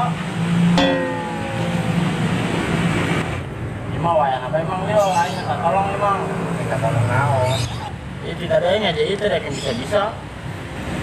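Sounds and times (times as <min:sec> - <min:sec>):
road traffic rumble: 0:00.0 - 0:11.0
ringing tone sliding down: 0:00.8 - 0:03.2.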